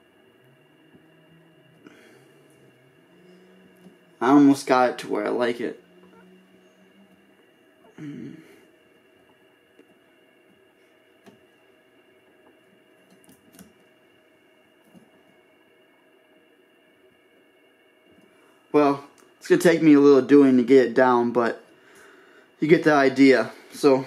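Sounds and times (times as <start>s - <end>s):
faint room hum: 0.0s - 24.0s
man clearing his throat: 7.9s - 8.5s.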